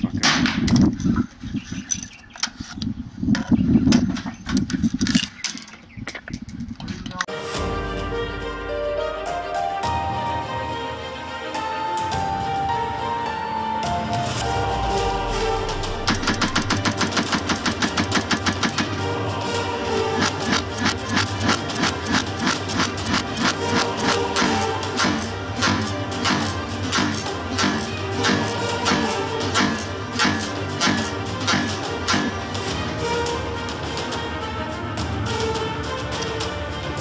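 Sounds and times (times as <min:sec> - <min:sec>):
background music: 0:07.3 - 0:37.0
rifle shots: 0:16.0 - 0:19.0.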